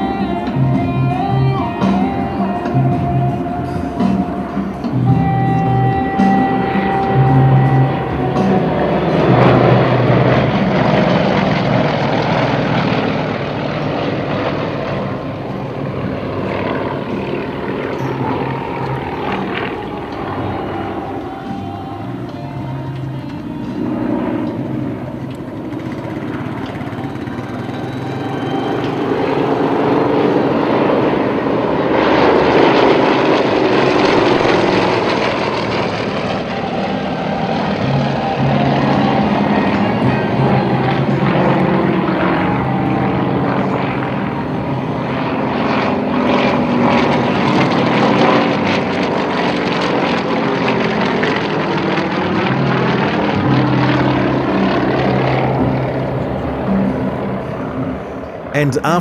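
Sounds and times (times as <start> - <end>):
propeller planes droning overhead: 0.0 - 59.0.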